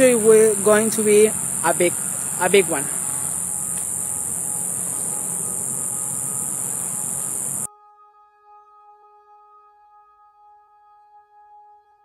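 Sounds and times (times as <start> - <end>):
high-pitched insect chorus: 0.0 - 7.7
faint music with held tones: 3.3 - 12.0.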